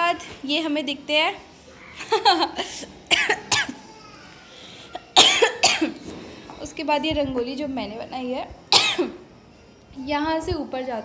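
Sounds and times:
boy coughing: 2.4 - 3.8, 4.9 - 6.0, 8.7 - 9.2.

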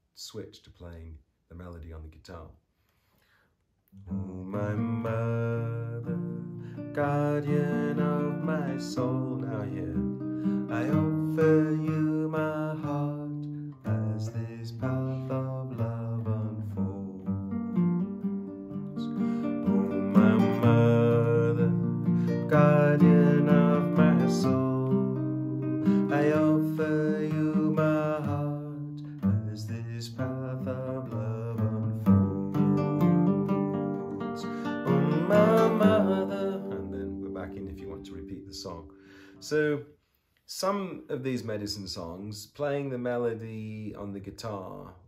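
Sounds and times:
fingerstyle acoustic guitar: 4.0 - 39.0.

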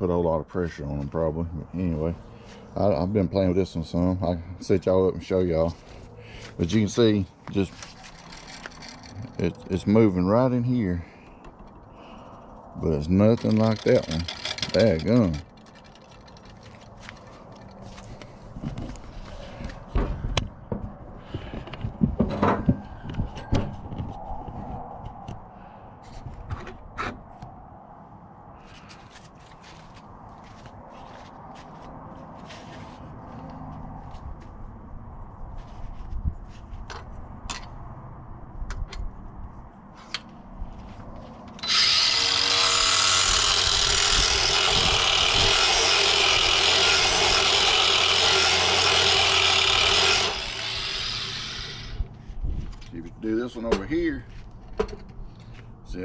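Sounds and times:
grinding stone on steel blade: 41.6 - 52.0.

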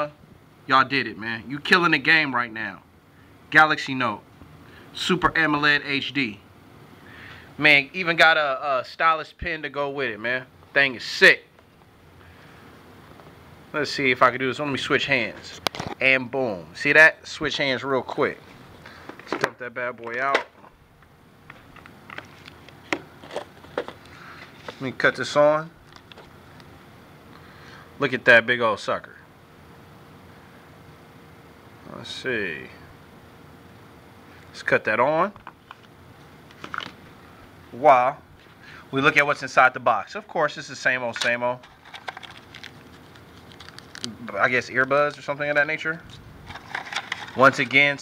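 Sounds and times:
plastic bag crinkling: 41.6 - 44.2, 46.4 - 47.7.

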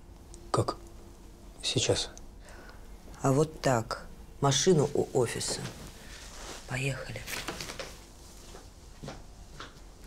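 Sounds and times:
footsteps on office floor: 4.9 - 5.9, 7.2 - 9.9.

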